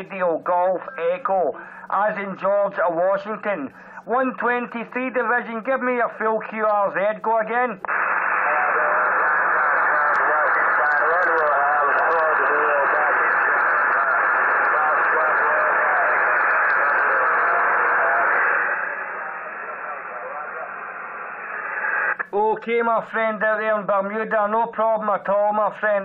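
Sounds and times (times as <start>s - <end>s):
radio hiss and static: 0.0s - 22.5s
distant voice over radio: 6.5s - 21.3s.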